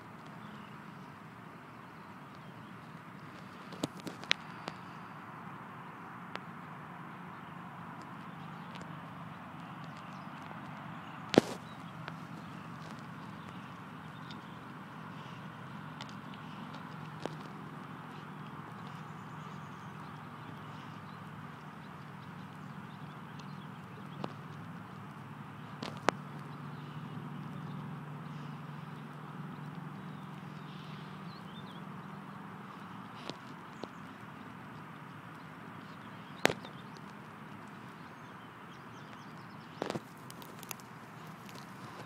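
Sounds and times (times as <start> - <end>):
small chewing clicks: 0.0 - 5.1, 6.0 - 42.0
dog crunching bone: 39.8 - 42.0.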